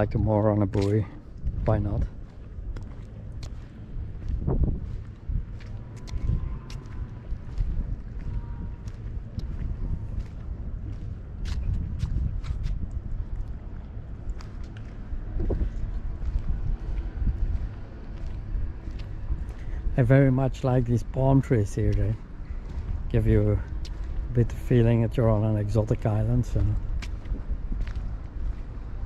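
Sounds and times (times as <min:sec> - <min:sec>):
wind rumbling on microphone: 0:00.0 - 0:29.0.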